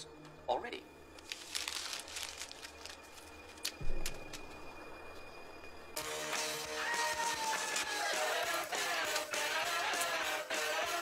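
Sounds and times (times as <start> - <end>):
paper rustling and crinkling: 1.2 - 4.4.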